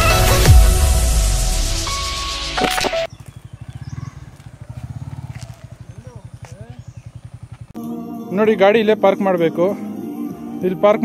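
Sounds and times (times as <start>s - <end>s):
short chirping calls: 2.9s - 7.7s
motorcycle engine idling: 3.1s - 7.8s.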